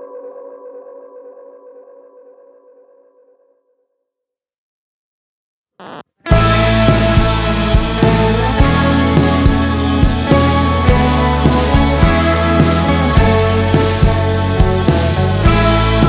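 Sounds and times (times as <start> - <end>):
rock band playing: 6.3 - 16.0
sustained wavering guitar chord: 6.3 - 16.0.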